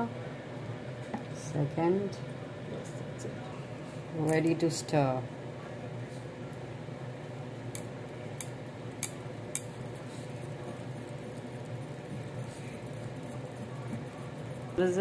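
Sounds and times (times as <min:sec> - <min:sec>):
steady low hum: 0:00.0 - 0:15.0
utensil stirring thick batter: 0:09.6 - 0:15.0.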